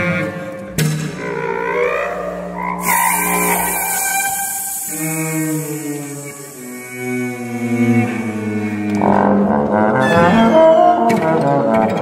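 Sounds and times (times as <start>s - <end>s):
breathy hiss: 2.8s - 8.8s.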